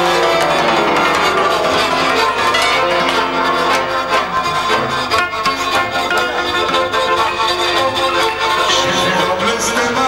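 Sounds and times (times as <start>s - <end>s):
cimbalom hammered strings: 0.0s - 8.7s.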